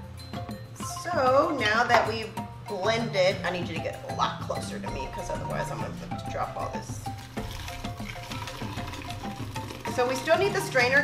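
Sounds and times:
background music: 0.0 - 11.0
liquid pouring through strainer: 7.1 - 10.7.

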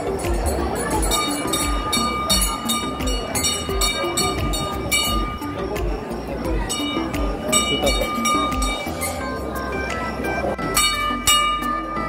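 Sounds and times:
loud music with drum beat: 0.0 - 9.2.

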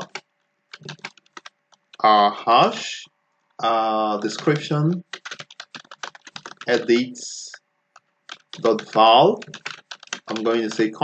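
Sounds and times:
keyboard typing clicks: 0.0 - 2.0, 4.2 - 6.9, 8.0 - 10.9.

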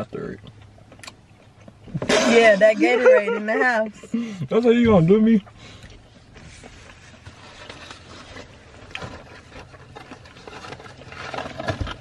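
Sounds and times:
people chewing: 0.0 - 2.1, 5.4 - 12.0
low steady hum: 0.0 - 12.0.

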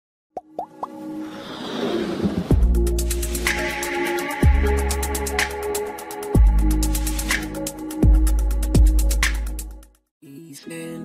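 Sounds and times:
plop effects: 0.4 - 1.0
rising swell: 1.0 - 6.3
intro music: 2.2 - 9.9.

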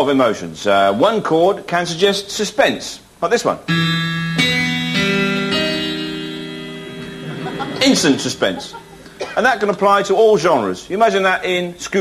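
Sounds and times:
keyboard suspense chord: 3.7 - 9.3.

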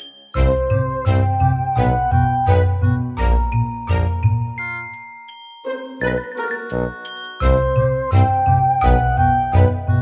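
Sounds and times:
chiming bell-like music: 0.0 - 10.0.

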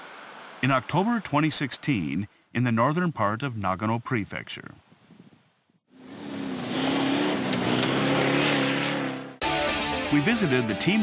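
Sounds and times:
car engine droning: 0.0 - 1.7, 5.9 - 9.4
guitar music: 9.4 - 11.0.

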